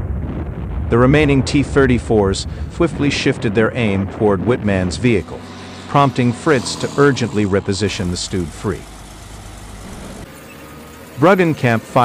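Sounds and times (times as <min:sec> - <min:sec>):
tank engine rumbling: 0:02.4 - 0:12.0.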